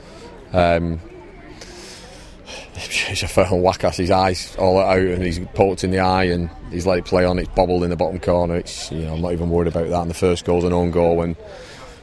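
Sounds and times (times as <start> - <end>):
soft breath-like rush: 0.0 - 0.5, 1.4 - 3.3, 11.4 - 12.0
outdoor background noise: 0.0 - 12.0
man speaking: 2.8 - 11.4.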